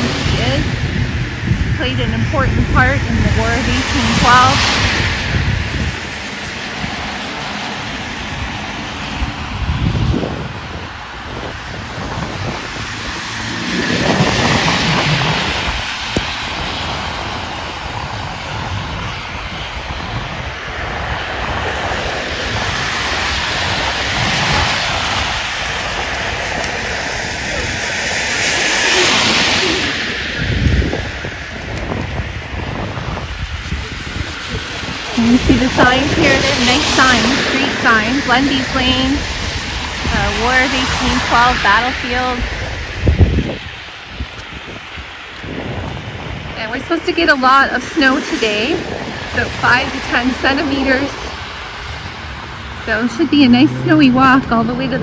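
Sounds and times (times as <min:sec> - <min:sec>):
car tyres hissing through water: 0:00.0 - 0:54.4.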